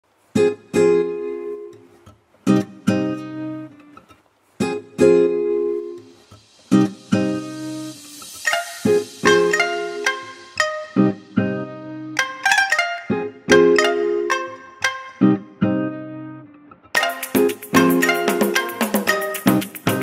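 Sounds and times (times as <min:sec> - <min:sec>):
guitar strumming chords: 0:00.2 - 0:20.0
picked guitar notes: 0:00.2 - 0:20.0.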